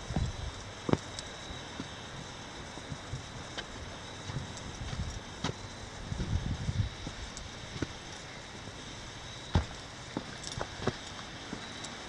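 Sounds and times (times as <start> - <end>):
faint steady hiss: 0.0 - 12.0
soft footsteps: 2.9 - 5.6, 9.5 - 11.8.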